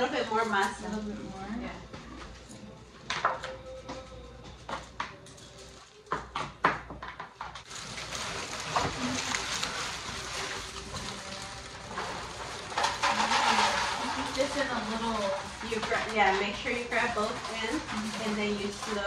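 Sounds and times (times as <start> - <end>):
utensils knocking on countertop: 6.1 - 7.6, 12.7 - 19.0.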